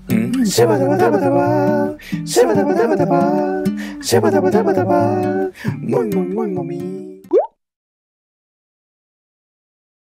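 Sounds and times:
ukulele: 0.0s - 7.2s
man singing: 0.0s - 7.3s
rising plop sound effect: 7.3s - 7.5s.

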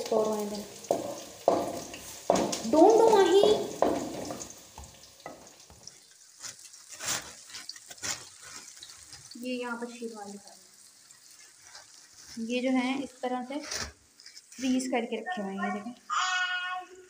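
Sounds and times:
food sizzling in a pan: 0.0s - 17.0s
knocks: 0.9s - 5.4s
person calling out: 15.6s - 17.0s.

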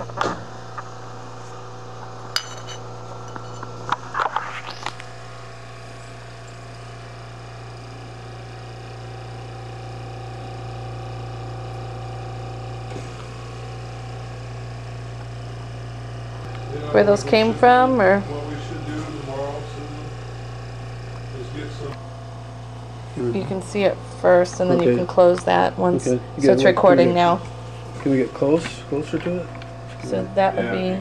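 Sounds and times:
low steady hum: 0.0s - 31.0s.

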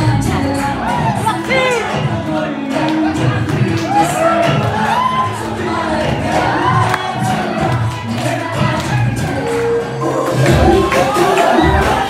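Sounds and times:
dance music over loudspeakers: 0.0s - 12.0s
audience cheering and shouting: 0.1s - 12.0s.

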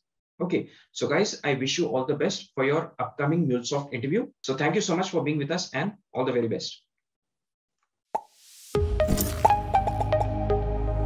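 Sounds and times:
music with deep bass: 8.8s - 11.0s.

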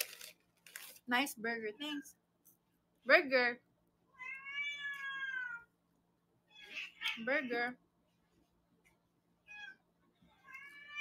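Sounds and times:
high-pitched cat meow: 4.1s - 5.7s, 10.4s - 11.0s.

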